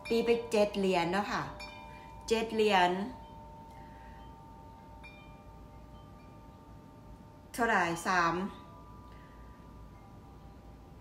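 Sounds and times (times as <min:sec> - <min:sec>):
chime-like ringing tones: 0:00.0 - 0:11.0.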